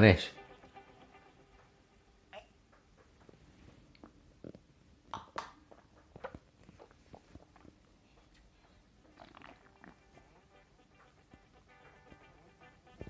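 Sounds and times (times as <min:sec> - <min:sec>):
soft mouth smacks: 0:03.9 - 0:10.0.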